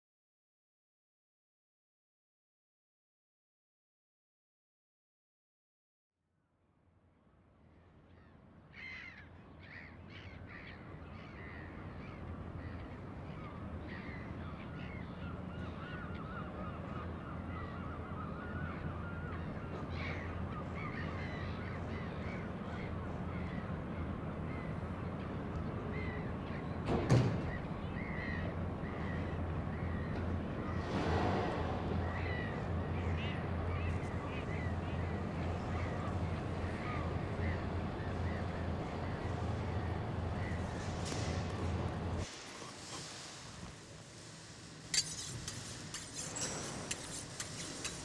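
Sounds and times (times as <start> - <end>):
birds calling: 8.2 - 42.9, 44.9 - 48.0
steady low rumble: 28.6 - 42.3.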